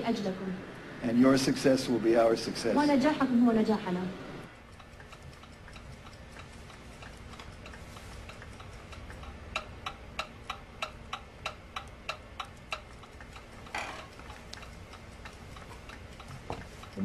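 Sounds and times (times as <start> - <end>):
soft rush of noise: 0.0 - 4.7
clock ticking: 4.5 - 17.0.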